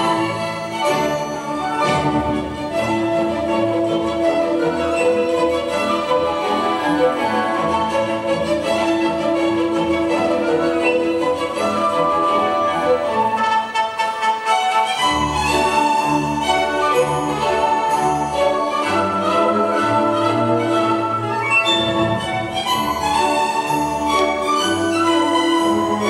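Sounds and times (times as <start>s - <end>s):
orchestral ballet music: 0.0s - 26.0s.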